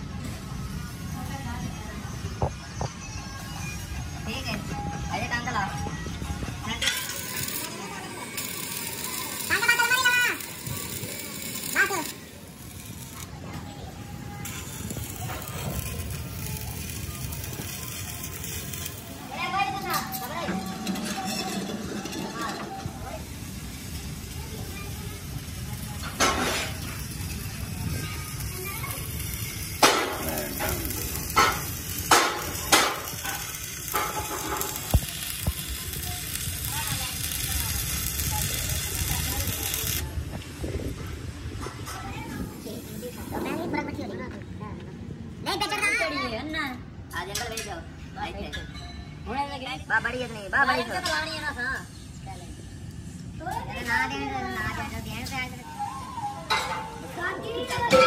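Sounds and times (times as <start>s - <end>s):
voices: 0.0s - 58.0s.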